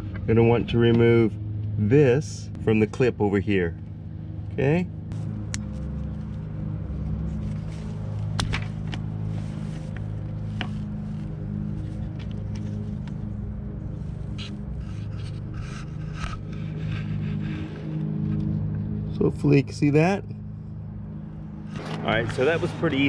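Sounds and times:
steady low hum: 0.0s - 23.0s
scraping and rustling: 7.2s - 13.1s.

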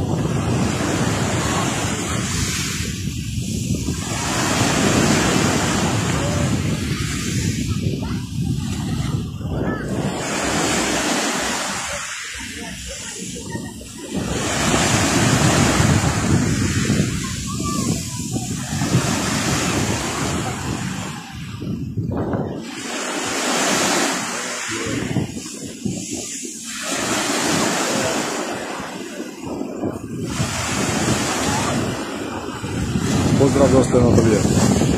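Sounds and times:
waves washing on pebble shore: 0.0s - 34.9s.

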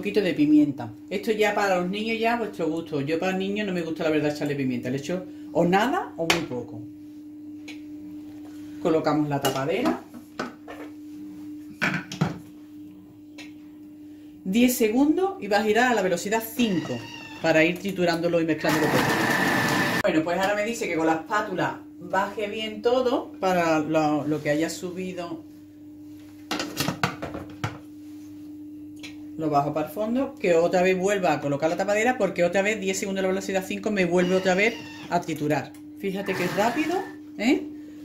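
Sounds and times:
steady low hum: 0.0s - 16.7s, 20.0s - 38.0s.

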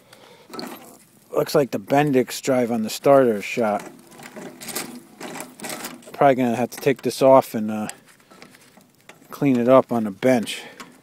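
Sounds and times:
metallic gear clicking and rattling: 3.4s - 8.4s.

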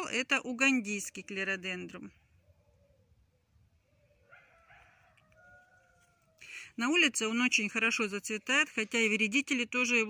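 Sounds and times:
distant rooster crowing: 3.9s - 6.5s.

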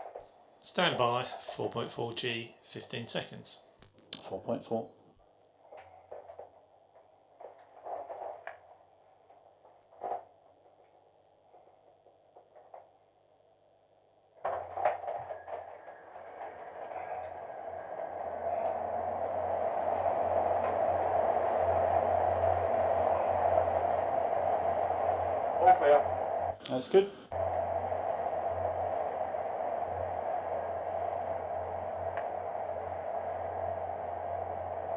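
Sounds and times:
centrifuge low hum: 14.1s - 34.9s
faint clicks: 14.4s - 34.9s.

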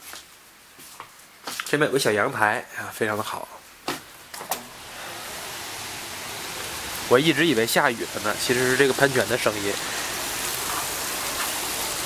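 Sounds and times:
fountain jets splashing: 4.7s - 12.0s.

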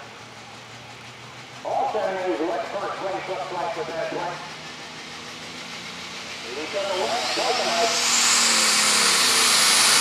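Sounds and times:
tractor engine idling: 0.0s - 10.0s
man's voice: 1.7s - 4.4s, 6.5s - 8.0s.

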